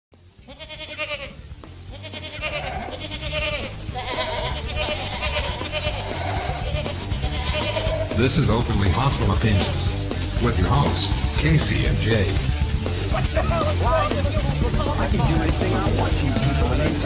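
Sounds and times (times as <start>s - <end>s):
quavering high-pitched cry: 2.0s - 8.1s
steady low bass line: 7.8s - 17.0s.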